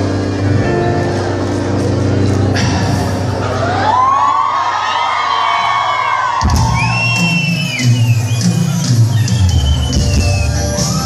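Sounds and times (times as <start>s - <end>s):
crowd whooping: 3.3s - 11.0s
live band music: 6.5s - 11.0s.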